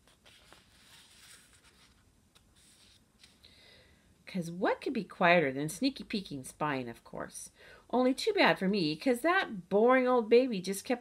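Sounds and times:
paperback book rustling: 0.0 - 3.4.

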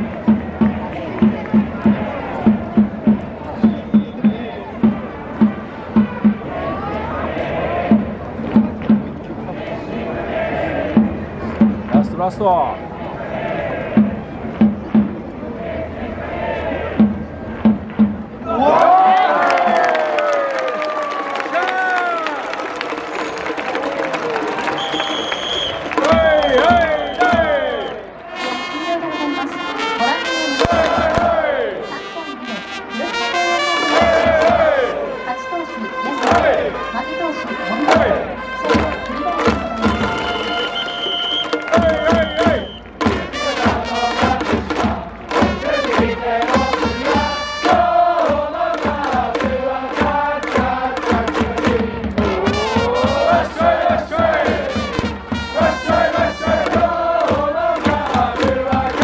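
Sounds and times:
people clapping: 0.0 - 2.5, 17.9 - 28.3, 33.8 - 34.7, 36.1 - 36.5, 37.9 - 51.8, 55.8 - 59.0
brass music with beat: 0.0 - 6.9, 24.6 - 59.0
crowd cheering and shouting: 6.4 - 8.0, 18.4 - 28.6, 30.0 - 31.9, 33.6 - 37.1, 37.7 - 43.0, 52.2 - 59.0.

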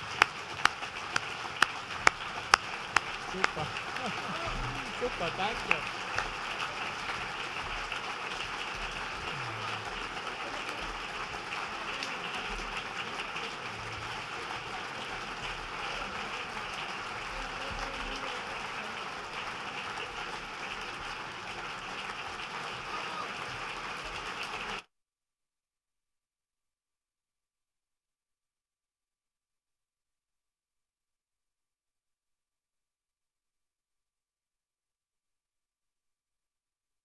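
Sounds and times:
large audience applauding: 0.0 - 24.9.

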